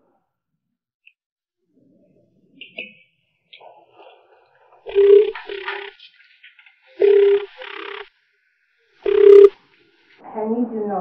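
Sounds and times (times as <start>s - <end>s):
telephone double ring: 4.9s - 5.9s, 7.0s - 8.0s, 9.1s - 9.5s.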